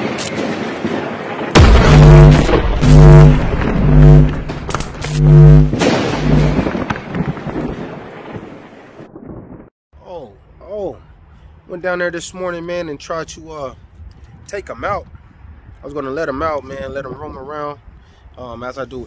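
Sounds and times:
deep bass hits with synth tone: 1.6s - 6.7s.

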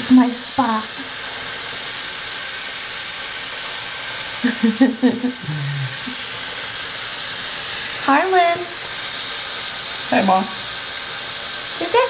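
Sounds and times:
person speaking briefly: 5.4s - 6.0s.

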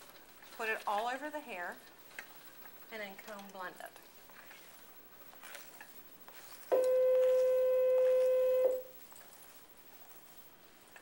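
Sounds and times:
comb through wet hair: 0.0s - 11.0s.

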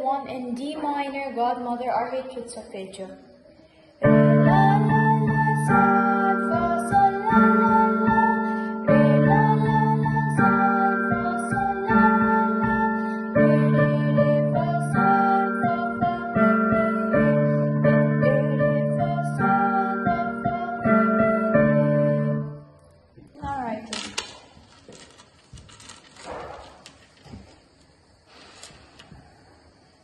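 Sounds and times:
piano chords and arpeggios: 4.0s - 22.6s
rustling: 23.5s - 29.3s.

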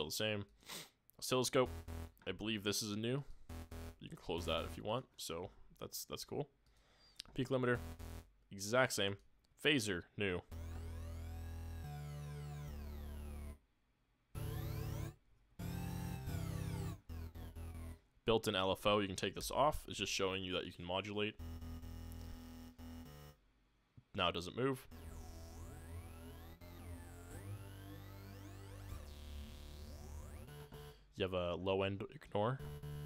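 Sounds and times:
synthesizer notes with phaser: 1.6s - 2.2s, 3.5s - 4.8s, 7.8s - 8.3s, 10.5s - 13.6s, 14.4s - 18.0s, 21.4s - 23.4s, 24.8s - 31.2s, 32.6s - 33.0s.

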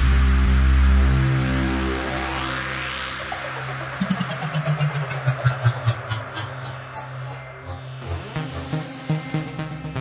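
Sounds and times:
pulsing synth bass line: 1.6s - 10.0s
rising noise sweep: 3.5s - 9.6s.

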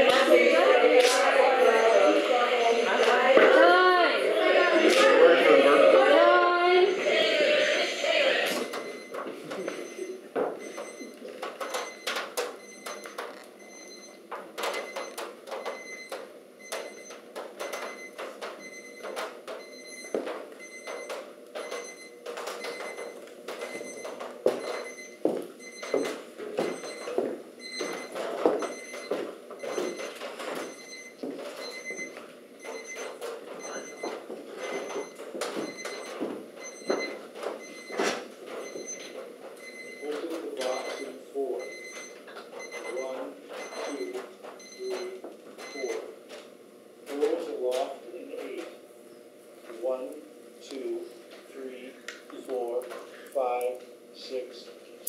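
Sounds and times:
soft indistinct voices: 0.0s - 10.3s
footsteps: 19.3s - 39.6s
faint high electronic beeping: 39.6s - 46.0s.

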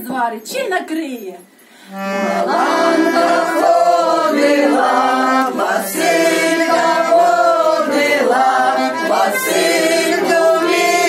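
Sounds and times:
group singing in unison: 2.1s - 11.0s.

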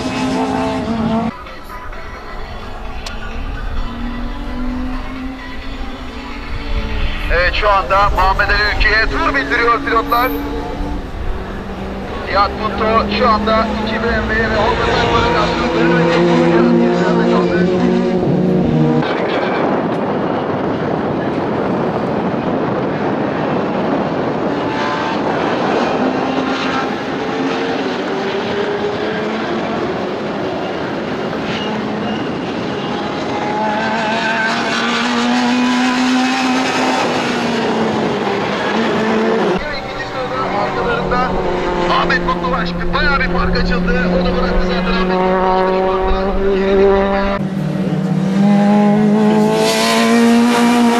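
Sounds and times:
race car engine revving: 0.0s - 50.9s.

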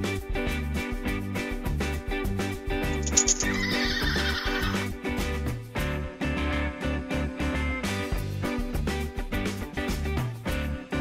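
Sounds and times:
background music: 0.0s - 11.0s
quick clicks: 3.0s - 4.0s
horse whinny: 3.5s - 4.8s.

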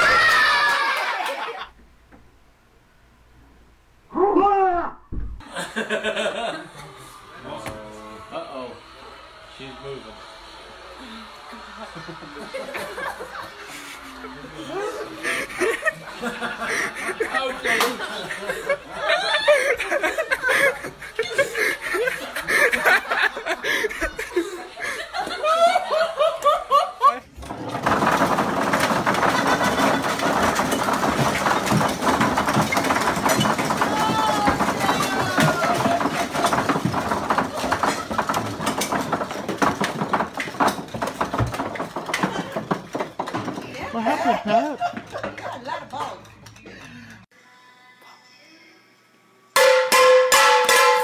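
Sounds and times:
ping-pong balls bouncing clatter: 27.4s - 47.0s, 49.6s - 51.0s
loud metallic clangs: 49.6s - 51.0s.

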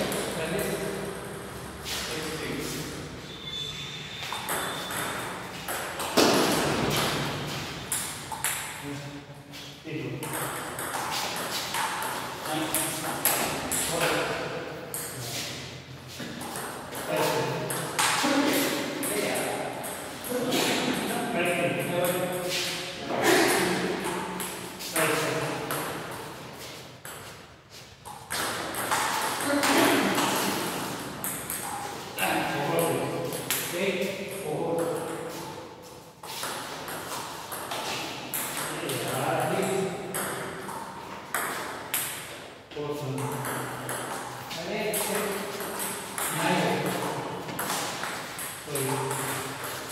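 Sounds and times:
people talking: 0.0s - 1.0s, 2.0s - 2.8s, 9.8s - 10.5s, 12.4s - 14.6s, 17.0s - 24.1s, 24.9s - 25.8s, 29.4s - 31.0s, 32.2s - 35.4s, 38.6s - 40.4s, 42.7s - 43.6s, 44.5s - 47.3s, 48.7s - 49.4s.

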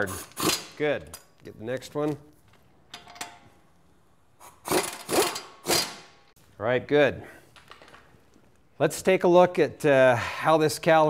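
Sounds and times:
impact wrench hammering: 0.0s - 1.3s, 4.6s - 6.3s.

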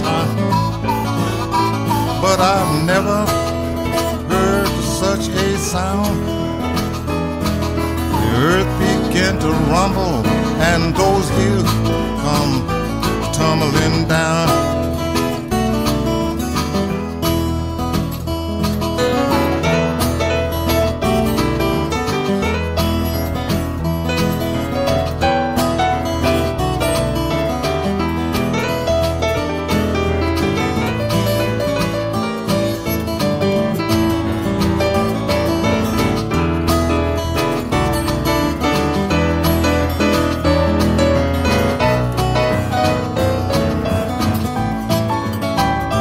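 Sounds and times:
plucked acoustic guitar blues: 0.0s - 46.0s.

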